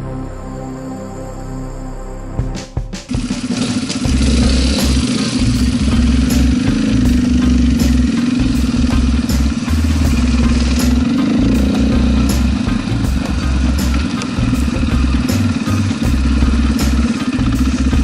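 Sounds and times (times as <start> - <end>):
dirt bike engine idling: 3.1 - 18.0.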